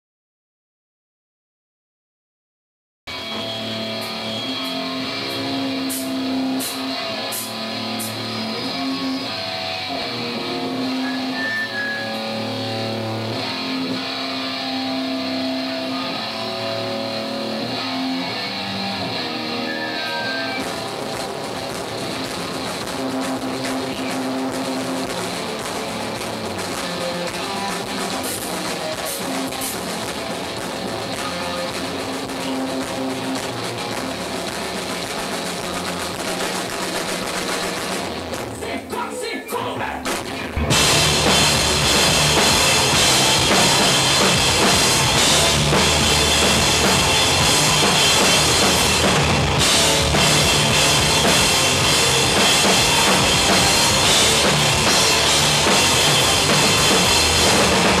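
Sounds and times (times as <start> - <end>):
guitar chords: 3.1 - 58.0
heavy rock band playing: 3.1 - 58.0.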